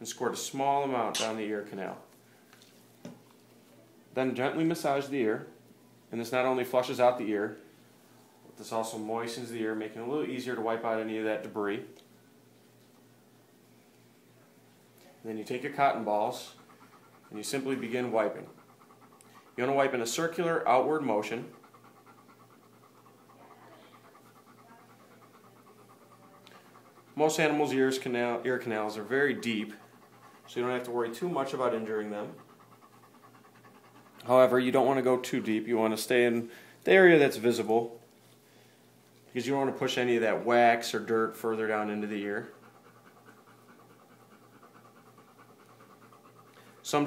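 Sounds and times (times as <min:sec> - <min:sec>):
dog panting: 0:15.1 - 0:38.4, 0:39.1 - 0:47.0.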